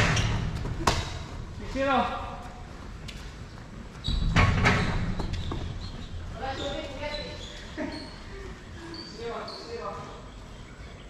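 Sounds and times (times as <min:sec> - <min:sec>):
basketball bouncing: 0:00.0 - 0:01.4.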